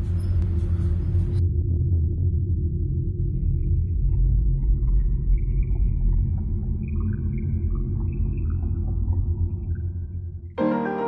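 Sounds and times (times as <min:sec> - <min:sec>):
deep rumbling drone: 0:00.0 - 0:10.6.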